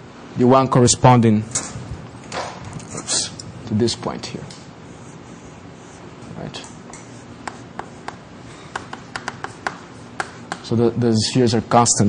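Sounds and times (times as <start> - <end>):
chalk tapping on blackboard: 6.6 - 10.7.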